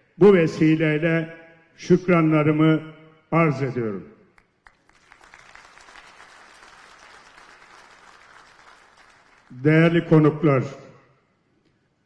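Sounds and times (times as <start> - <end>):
audience applause: 4.6 - 9.6.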